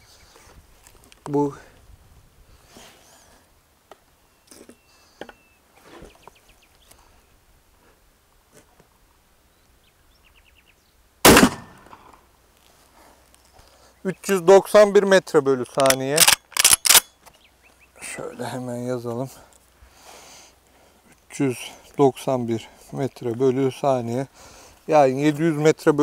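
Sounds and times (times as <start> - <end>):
shotgun shot with ringing tail: 11.3 - 12.0
faint gun handling clicks: 15.6 - 17.4.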